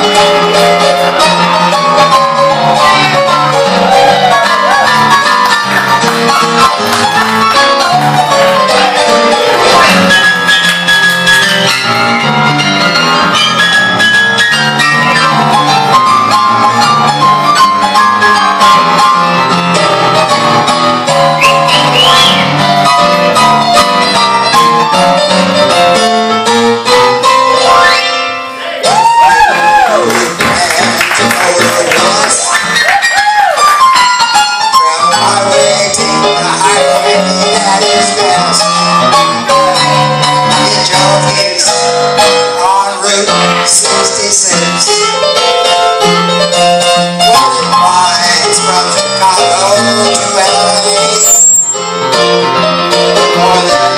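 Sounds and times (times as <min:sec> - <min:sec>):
electronic keyboard swing tune: 0:00.0 - 0:53.9
wavering high notes: 0:21.2 - 0:23.1.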